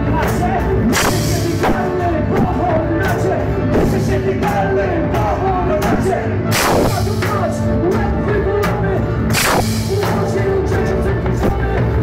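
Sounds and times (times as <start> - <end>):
double bass: 0.0 - 12.0
drums: 0.0 - 12.0
loud cymbal crash: 6.5 - 7.1, 9.3 - 9.9.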